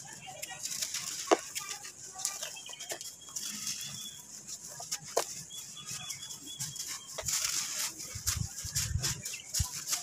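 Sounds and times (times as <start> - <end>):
sand grains rustling: 0.0 - 10.0.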